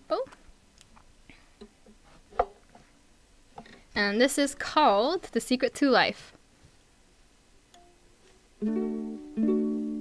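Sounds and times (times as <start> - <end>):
ukulele strings ringing: 8.6 - 10.0.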